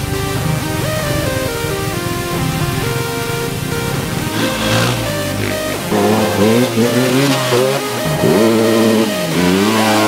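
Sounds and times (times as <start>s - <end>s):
dirt bike engine revving: 0.8s - 10.0s.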